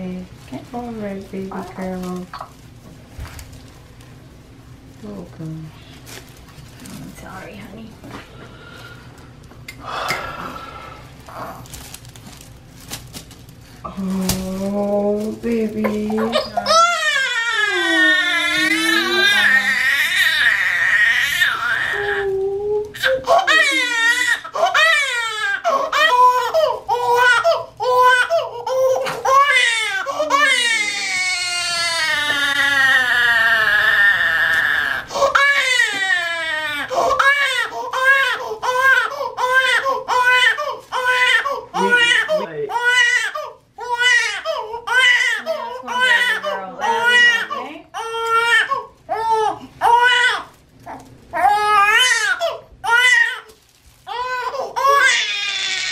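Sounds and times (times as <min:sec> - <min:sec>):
infant crying: 0:16.1 - 0:53.5, 0:54.1 - 0:55.9.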